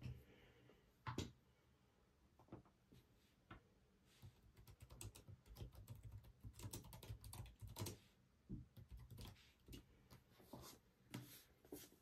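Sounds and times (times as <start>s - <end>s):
typing on keyboard: 4.5s - 8.0s, 8.7s - 9.9s.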